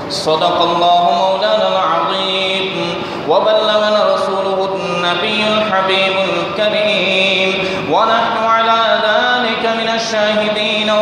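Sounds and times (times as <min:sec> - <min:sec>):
man chanting recitation: 0:00.1 - 0:11.0.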